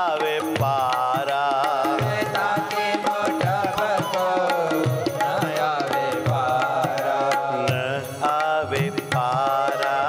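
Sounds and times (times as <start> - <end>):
person singing devotional verse: 0.0 - 10.0
tabla strokes: 0.0 - 10.0.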